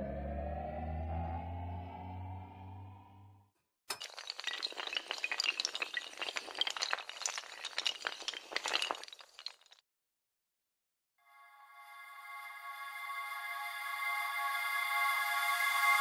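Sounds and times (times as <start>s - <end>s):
low rumbling tone: 0.0s - 3.4s
dominoes toppling: 4.0s - 9.8s.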